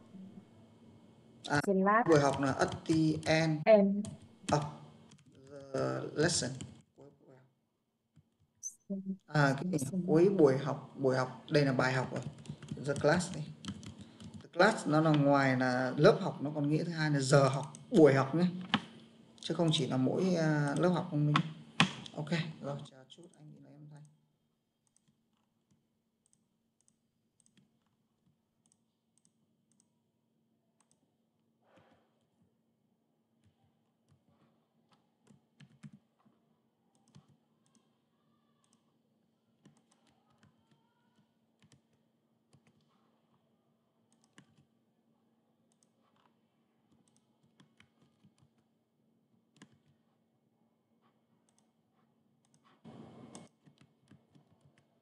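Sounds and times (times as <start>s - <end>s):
low steady hum: 0.0s - 7.4s, 8.6s - 24.2s
keyboard and mouse clicks: 2.1s - 3.3s, 12.1s - 15.3s, 17.5s - 19.1s, 20.7s - 22.2s, 24.9s - 29.9s, 30.8s - 31.1s, 33.4s - 36.3s, 37.0s - 37.9s, 38.6s - 38.9s, 39.6s - 43.0s, 44.1s - 44.7s, 45.7s - 46.3s, 46.9s - 48.6s, 49.5s - 50.0s, 51.0s - 51.7s, 52.4s - 54.9s
low voice: 5.4s - 7.4s, 9.0s - 12.2s.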